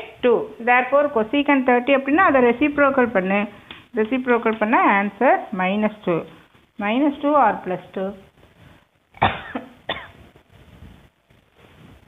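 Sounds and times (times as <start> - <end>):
woman coughing: 9.2 - 10.2.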